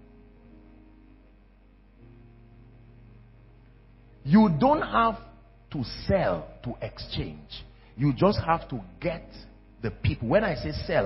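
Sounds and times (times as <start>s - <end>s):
soft held chords music: 0.0s - 11.0s.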